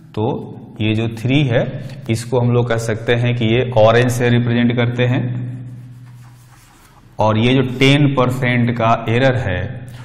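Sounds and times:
chalk scratching on blackboard: 0:05.7 - 0:07.1.

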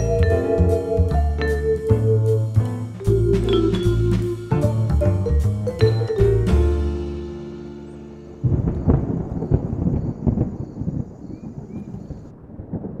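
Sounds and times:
vibraphone background music: 0:00.0 - 0:08.3
steady rain: 0:07.4 - 0:13.0
low rumbles and crackles: 0:08.3 - 0:13.0.

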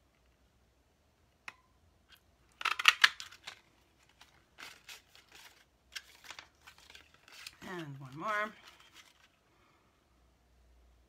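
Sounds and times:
paper rustling: 0:02.6 - 0:09.4.

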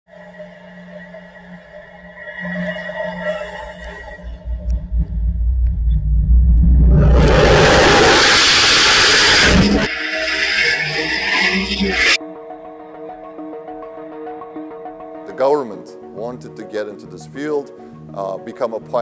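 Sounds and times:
music: 0:00.1 - 0:08.1, 0:09.2 - 0:19.0
low rumble: 0:04.2 - 0:09.9
rocket motor roaring: 0:06.0 - 0:12.2.

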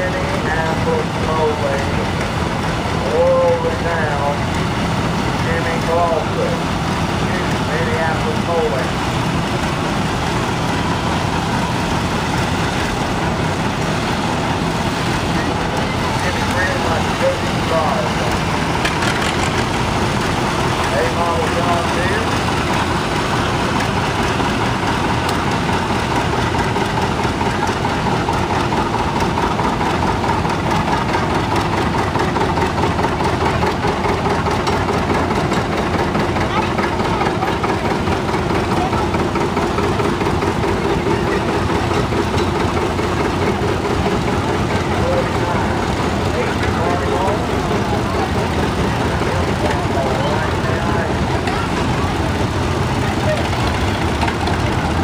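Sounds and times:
people's voices: 0:00.0 - 0:04.6, 0:05.3 - 0:09.0, 0:14.4 - 0:24.4, 0:32.4 - 0:55.0
tractor engines running: 0:00.0 - 0:55.0.

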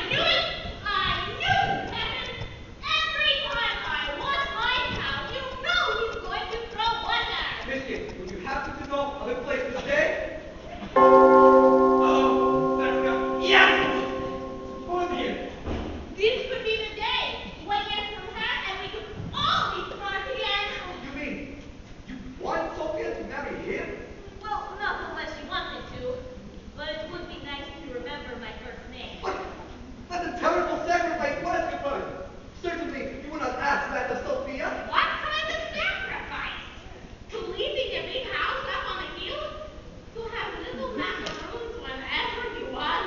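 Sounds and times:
bell ringing: 0:11.0 - 0:15.6.

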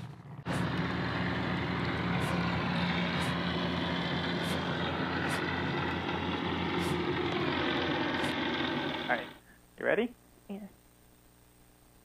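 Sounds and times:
engine running steadily: 0:00.0 - 0:09.4.

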